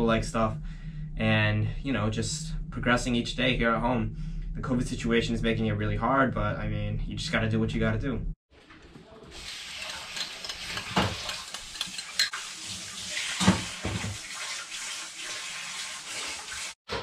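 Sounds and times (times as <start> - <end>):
fork stirring eggs in bowl: 9.4 - 12.3
eggs poured into frying pan: 9.4 - 12.6
fork clinking against bowl: 9.8 - 12.3.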